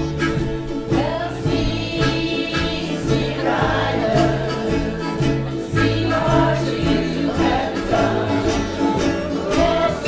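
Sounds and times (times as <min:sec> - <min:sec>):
double bass line: 0:00.0 - 0:10.0
harmonica: 0:00.0 - 0:10.0
ukuleles and guitars playing: 0:00.0 - 0:10.0.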